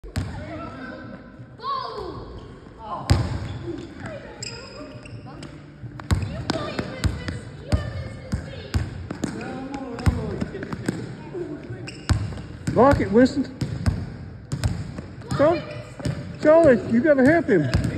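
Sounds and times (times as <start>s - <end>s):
basketball bouncing on gym floor: 6.0s - 11.1s, 11.9s - 17.9s.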